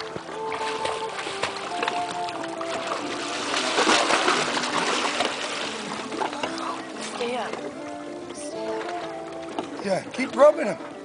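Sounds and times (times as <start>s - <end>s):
water splashing and sloshing: 0.0s - 11.0s.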